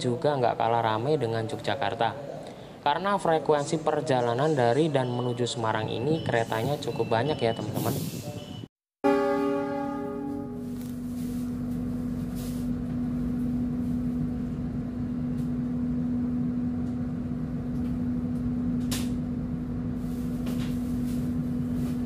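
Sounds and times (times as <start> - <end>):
low hum of train: 0.0 - 22.0
train horn: 9.0 - 11.5.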